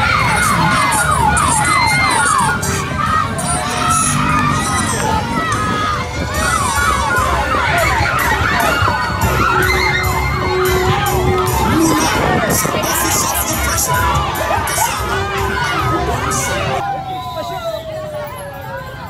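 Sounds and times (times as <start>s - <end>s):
children shouting and cheering: 0.0s - 19.0s.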